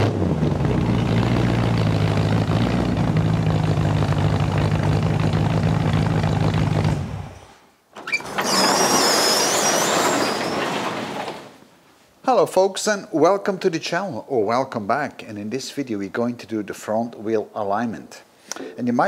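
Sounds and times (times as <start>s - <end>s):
car engine revving and running: 0.0s - 7.4s.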